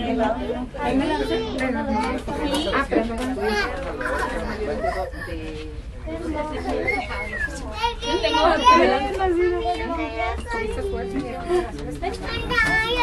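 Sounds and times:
voices talking and calling: 0:00.0 - 0:13.0.

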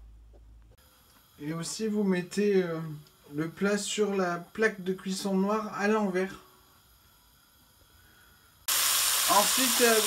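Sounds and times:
lardons sizzling in a pan: 0:00.8 - 0:10.0.

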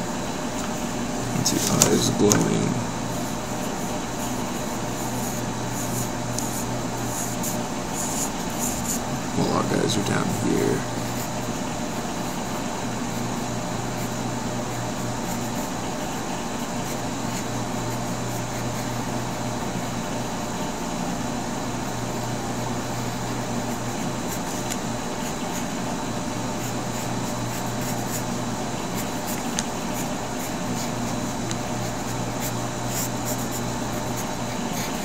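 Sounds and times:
low hum and hiss: 0:00.0 - 0:35.0
pencil scratching on paper: 0:01.4 - 0:20.5, 0:22.1 - 0:35.0.

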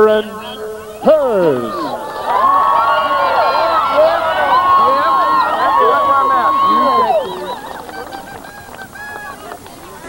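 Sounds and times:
high held yell: 0:01.0 - 0:09.5
crowd cheering and shouting: 0:01.0 - 0:10.0.

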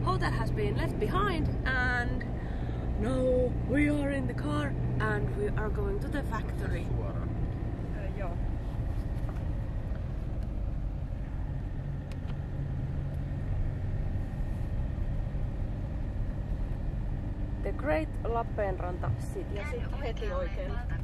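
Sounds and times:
car engine rumble from inside: 0:00.0 - 0:21.0
tyres on wet road: 0:00.0 - 0:21.0.

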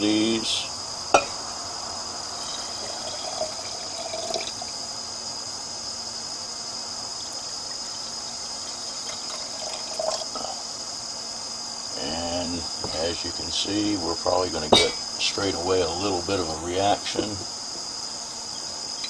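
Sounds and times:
liquid pouring from glass bottle: 0:02.4 - 0:04.7, 0:08.6 - 0:10.4.

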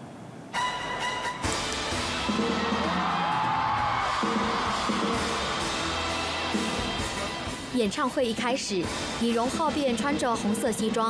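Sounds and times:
crowd screaming and cheering: 0:01.9 - 0:07.6
live band music: 0:04.2 - 0:07.7.

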